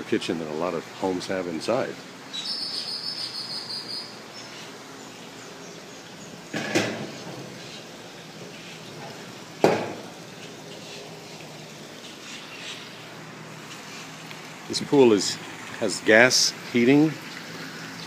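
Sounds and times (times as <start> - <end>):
sharp knocks: 9.6 - 10.1.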